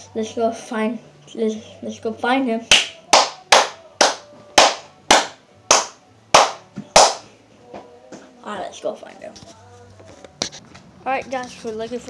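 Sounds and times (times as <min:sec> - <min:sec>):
hands clapping: 0:02.7 - 0:07.3.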